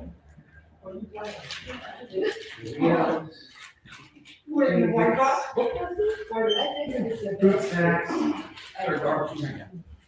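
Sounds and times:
people talking: 0.8 - 3.5, 4.5 - 9.9.

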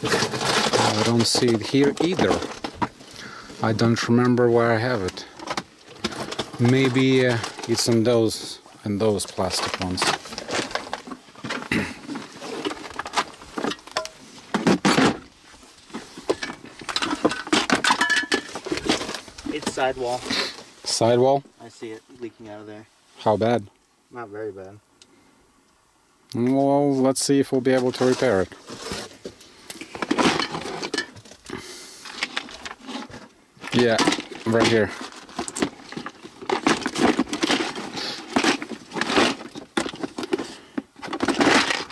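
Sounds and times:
plastic boxes shifted in drawer: 0.0 - 3.0, 5.0 - 8.2, 9.2 - 13.9, 15.9 - 20.6, 27.8 - 31.2, 32.0 - 41.9
plastic and metal clattering: 0.0 - 8.4, 9.0 - 15.3, 15.9 - 20.4, 27.7 - 41.9
small parts rattling: 0.0 - 15.2, 15.9 - 20.2, 29.8 - 41.9.

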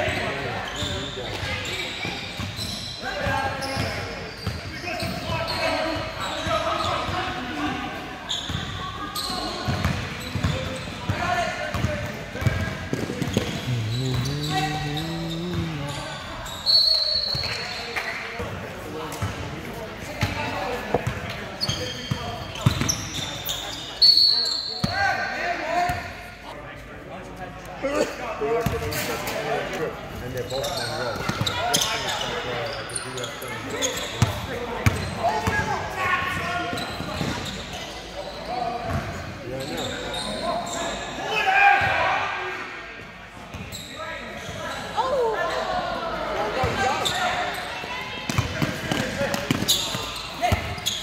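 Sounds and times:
people shouting and chattering: 0.0 - 43.3, 43.9 - 51.0.

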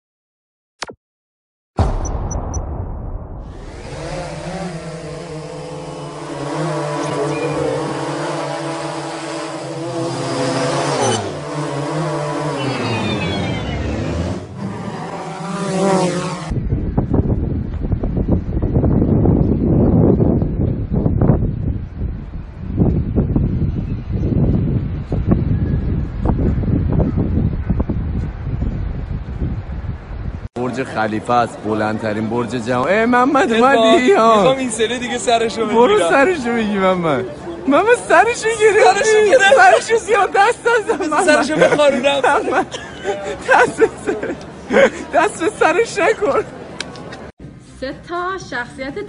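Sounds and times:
drone propellers whirring: 1.8 - 18.2
wind buffeting microphone: 16.5 - 30.5.

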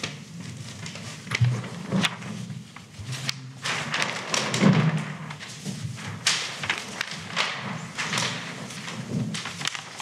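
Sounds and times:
paper sheets rustling: 0.0 - 10.0
microphone handling thumps: 1.3 - 2.3.

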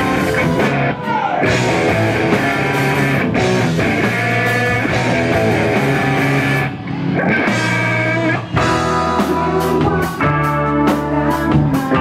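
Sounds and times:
bass guitar: 0.0 - 12.0
drum kit: 0.0 - 12.0
electric guitars: 0.0 - 12.0.

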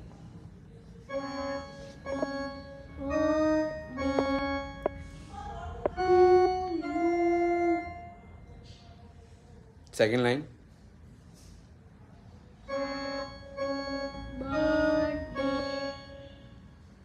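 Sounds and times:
electronic keyboard organ notes: 1.0 - 8.2, 12.7 - 16.6.

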